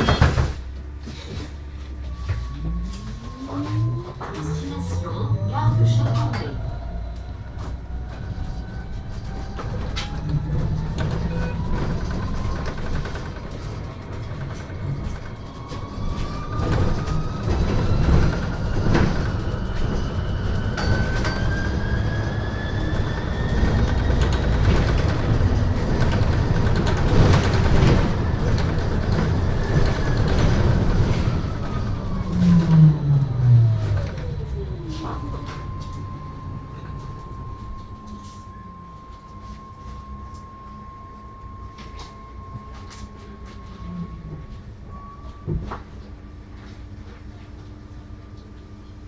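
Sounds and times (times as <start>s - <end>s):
loud low hum: 0.0s - 45.5s
electric bus drive whine: 0.0s - 49.0s
low rumble: 0.8s - 45.0s.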